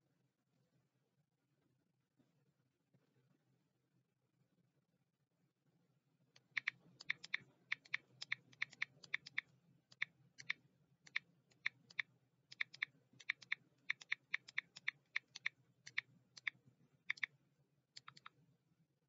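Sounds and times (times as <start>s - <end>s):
keyboard key clicks: 6.4s - 16.5s, 18.0s - 18.3s.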